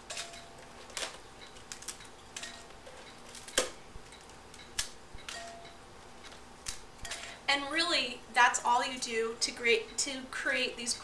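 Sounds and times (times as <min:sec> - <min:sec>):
cracker snapping: 0:00.1 - 0:05.7, 0:06.6 - 0:07.0.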